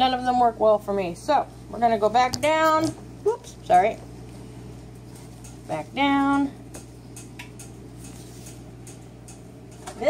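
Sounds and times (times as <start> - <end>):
air conditioning hum: 0.0 - 10.0
fan ticking: 4.9 - 10.0.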